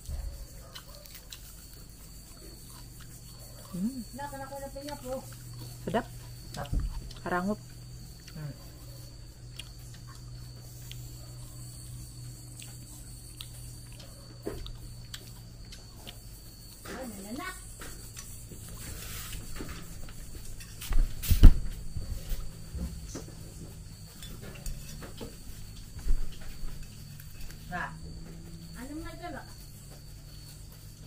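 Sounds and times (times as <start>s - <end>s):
crunchy chewing: 0.0s - 31.0s
steady low hum: 0.0s - 31.0s
woman murmuring: 3.7s - 4.6s.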